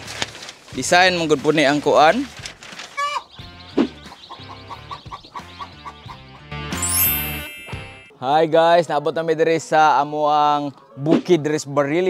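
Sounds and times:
repeating high note: 6.8 - 8.2.

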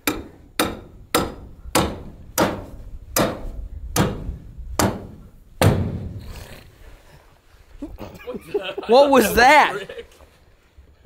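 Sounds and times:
hammer striking metal stake: 0.0 - 6.2.

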